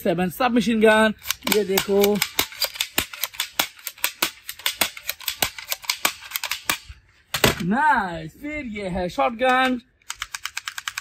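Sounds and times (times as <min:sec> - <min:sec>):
toy gun clicking rapidly: 0:01.2 - 0:06.9, 0:09.5 - 0:11.0.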